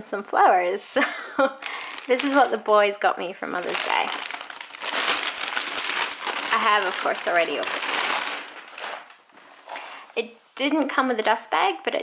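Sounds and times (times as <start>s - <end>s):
plastic bag rustling: 1.6s - 10.0s.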